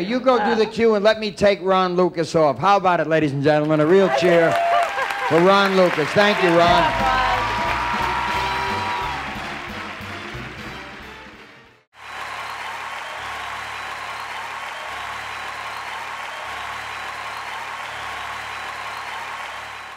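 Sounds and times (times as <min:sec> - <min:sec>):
audience applause: 0:03.7 - 0:19.9
live band music: 0:06.3 - 0:11.7
low bass line: 0:06.6 - 0:09.8.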